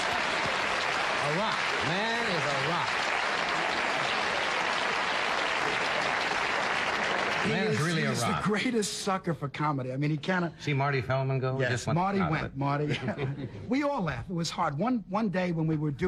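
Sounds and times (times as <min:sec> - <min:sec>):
studio audience applauding: 0:00.0 - 0:08.7
man talking: 0:01.2 - 0:03.0, 0:07.4 - 0:16.0.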